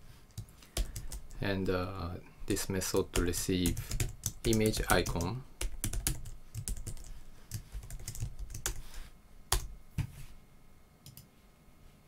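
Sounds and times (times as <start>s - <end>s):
keyboard typing: 0.4s - 1.4s, 3.0s - 9.7s, 11.0s - 11.3s.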